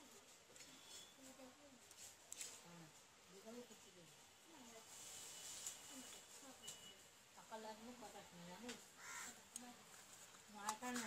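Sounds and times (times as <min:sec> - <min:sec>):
faint distant voices talking: 0:00.0 - 0:11.0.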